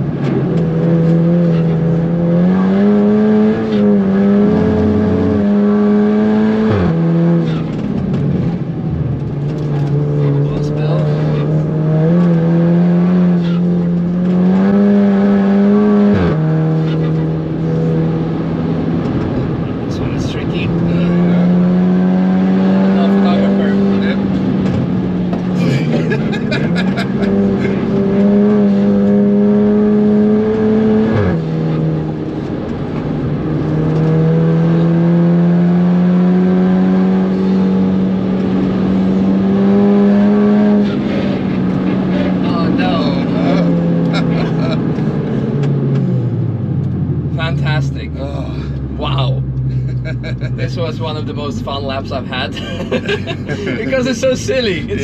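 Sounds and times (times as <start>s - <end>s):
car engine revving under load: 0.0s - 55.0s.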